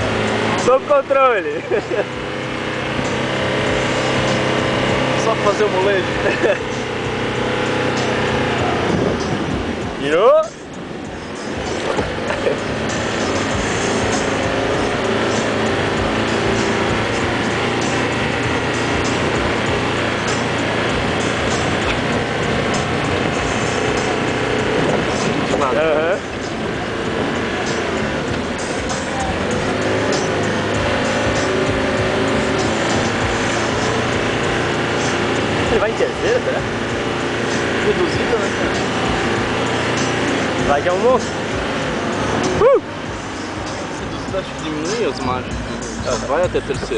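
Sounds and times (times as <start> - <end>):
engine running under load: 0.0 - 46.9.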